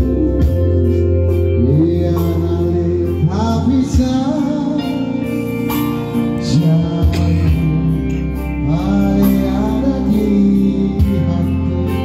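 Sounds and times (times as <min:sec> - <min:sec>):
electronic keyboard chords and bass: 0:00.0 - 0:12.0.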